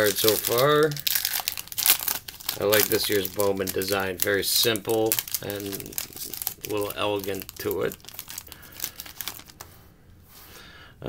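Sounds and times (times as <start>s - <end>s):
foil wrapper crinkling: 0.0s - 9.7s.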